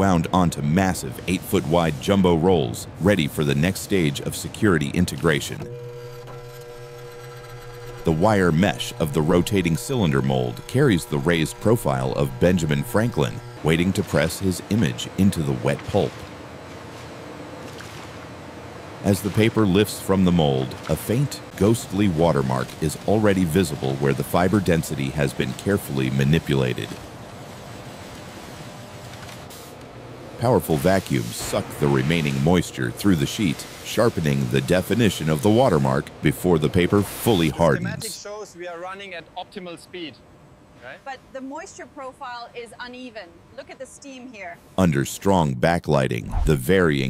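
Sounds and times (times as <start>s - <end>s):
machine hum with held tones: 2.5s - 27.3s
factory machinery hiss: 30.4s - 35.6s.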